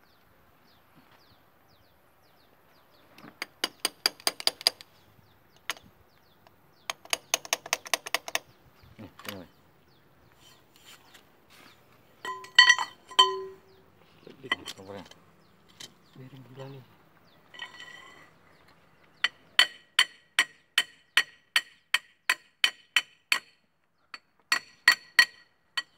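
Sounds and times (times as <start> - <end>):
ringing metal clinks: 12.2 - 13.7.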